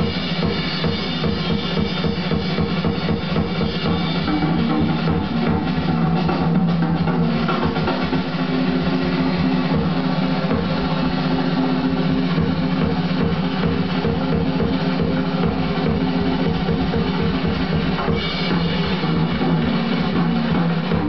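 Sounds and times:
fast jazz drum kit: 0.0s - 21.0s
jazz band playing: 0.0s - 21.0s.

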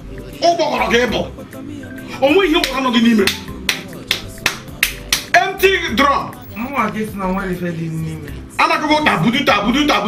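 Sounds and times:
man clapping hands: 2.6s - 5.4s.

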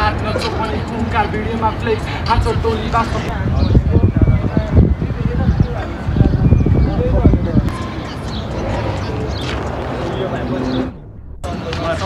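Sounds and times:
group of people talking: 0.0s - 12.0s
low rumbling thumps on microphone: 3.3s - 12.0s.

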